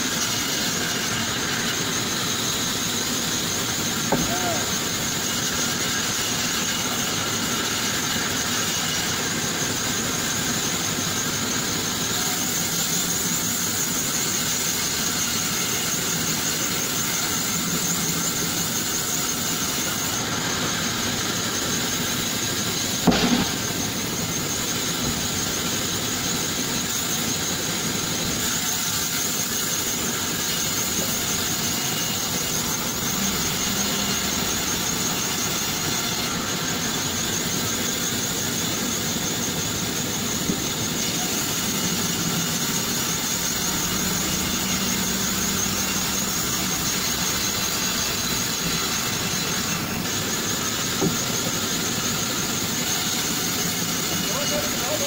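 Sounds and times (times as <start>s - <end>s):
band saw blade whine: 0.0s - 55.0s
machine drone: 0.0s - 55.0s.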